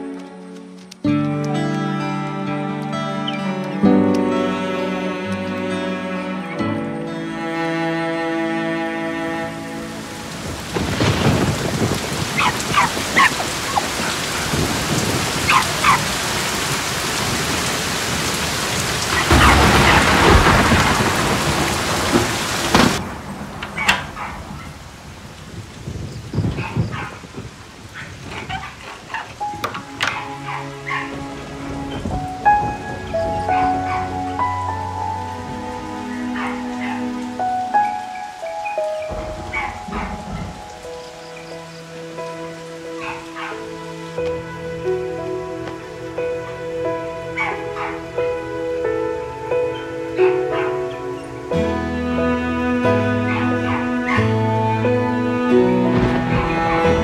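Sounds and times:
soft music with held notes: 0.0 - 22.2, 29.1 - 57.0
heavy rain: 0.0 - 57.0
thunderclap: 10.2 - 30.2, 39.0 - 41.6, 55.8 - 57.0.

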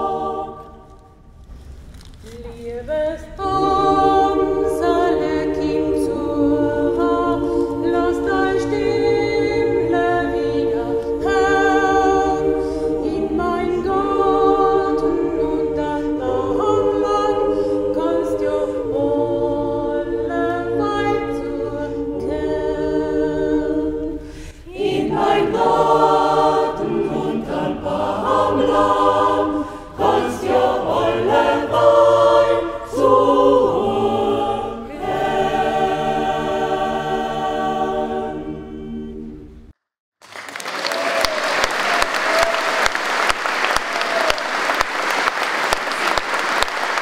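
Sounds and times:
choir singing a cappella: 0.0 - 1.3, 2.7 - 39.8.

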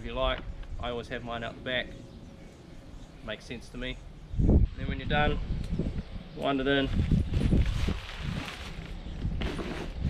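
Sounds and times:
rope and fabric rustling: 6.8 - 10.0.

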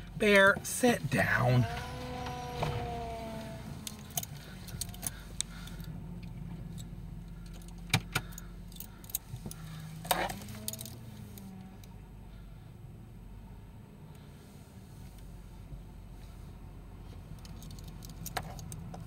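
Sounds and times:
car engine running low: 0.0 - 19.0
metallic clicks and jingles: 3.9 - 5.9, 6.7 - 11.5, 17.4 - 19.0.

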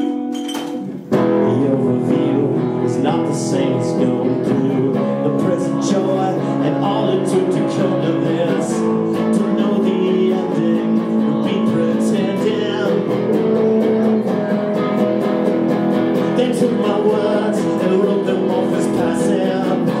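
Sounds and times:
guitar strumming chords: 0.0 - 20.0.

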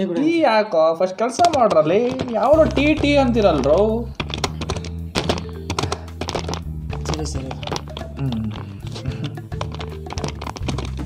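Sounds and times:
keyboard typing: 1.3 - 11.0
background music with low drone: 2.4 - 11.0.

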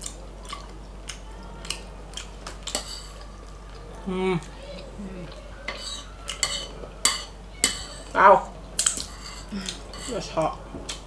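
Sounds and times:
fork clinking and scraping on plate: 2.7 - 3.2, 5.7 - 8.1, 8.8 - 10.3.

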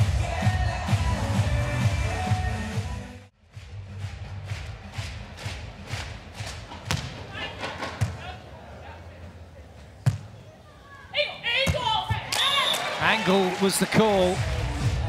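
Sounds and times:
volleyball hand slaps: 5.0 - 8.2.

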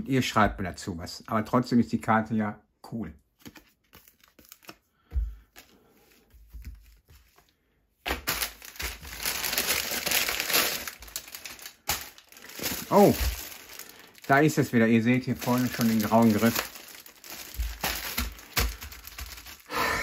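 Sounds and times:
foil bag tearing and crinkling: 8.1 - 19.8.

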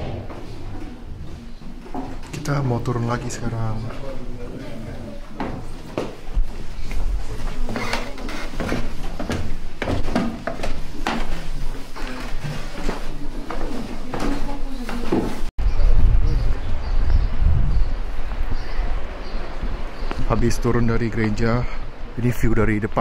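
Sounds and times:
footsteps on wooden stairs: 0.0 - 2.7, 3.8 - 15.5.

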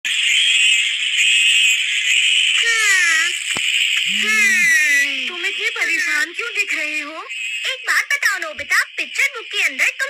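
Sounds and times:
cicadas buzzing: 0.1 - 10.0.

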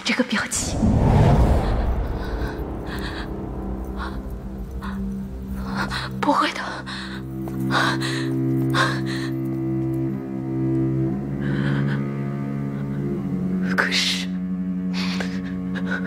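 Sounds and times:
low sustained bowed strings: 1.7 - 16.0.

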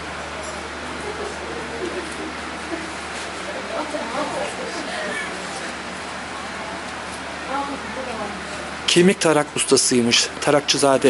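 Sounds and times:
faint voices talking: 0.0 - 11.0.

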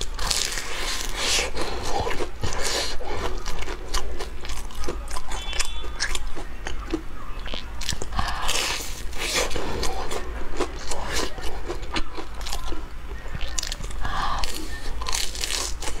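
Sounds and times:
crunchy chewing: 0.0 - 16.0.

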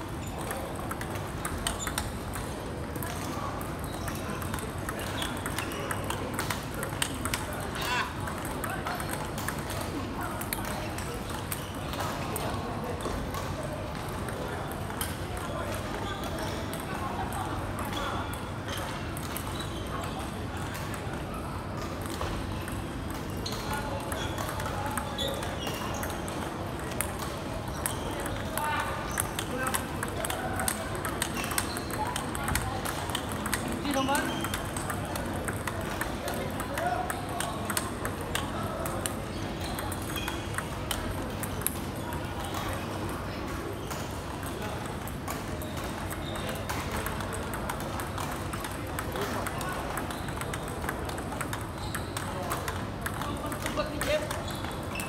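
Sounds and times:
table tennis ball clicking: 0.3 - 13.4, 21.9 - 55.0.

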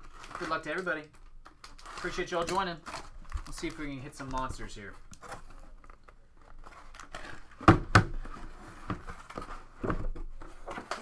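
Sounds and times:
cardboard rustling and scraping: 1.8 - 11.0.

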